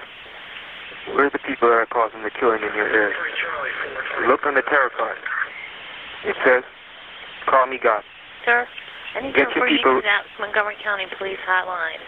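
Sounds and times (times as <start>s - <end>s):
person speaking over telephone: 1.1s - 5.6s, 6.2s - 6.7s, 7.4s - 12.0s.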